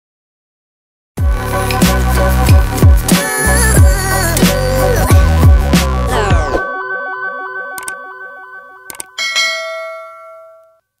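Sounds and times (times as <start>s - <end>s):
bright bell chime: 6.6s - 11.0s.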